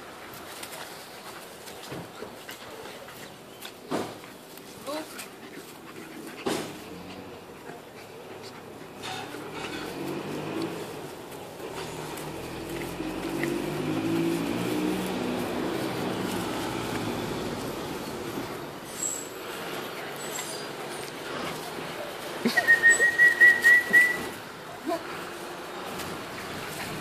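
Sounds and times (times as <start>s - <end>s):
puppies growling: 0.0s - 27.0s.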